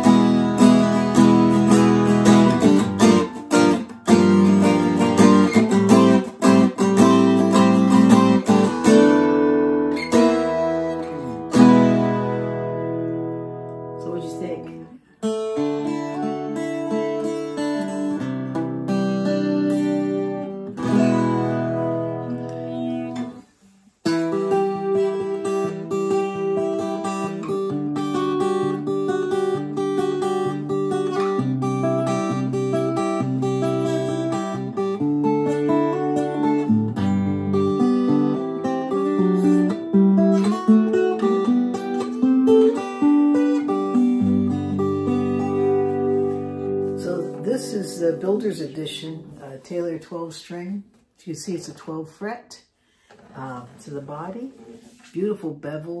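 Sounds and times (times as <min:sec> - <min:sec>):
acoustic guitar playing: 0:00.0 - 0:50.7, 0:51.6 - 0:56.0.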